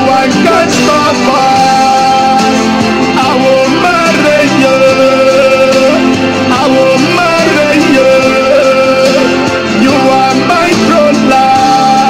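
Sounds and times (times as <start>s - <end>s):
love song playing: 0.0s - 12.0s.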